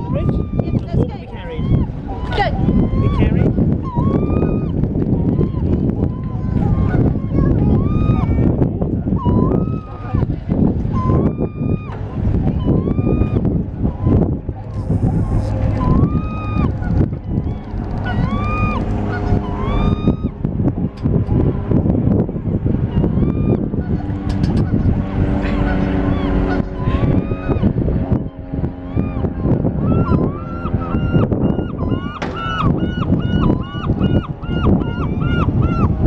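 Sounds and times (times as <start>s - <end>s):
gulls calling: 0.0s - 21.9s, 22.6s - 36.0s
low rumble: 0.0s - 36.0s.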